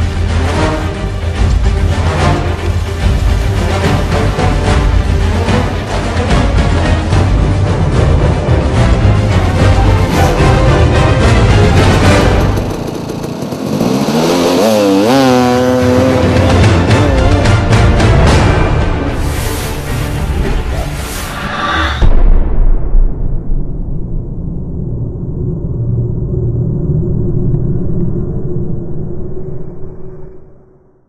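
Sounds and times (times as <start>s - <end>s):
dirt bike engine revving: 11.4s - 17.8s
deep rumble: 16.4s - 31.0s.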